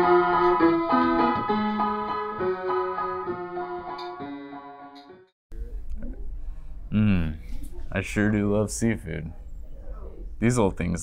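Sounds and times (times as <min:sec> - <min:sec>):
piano notes: 0:00.0 - 0:05.3.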